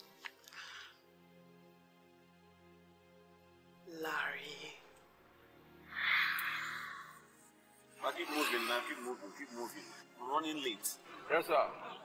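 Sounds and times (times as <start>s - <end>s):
soft film music: 0.0s - 12.0s.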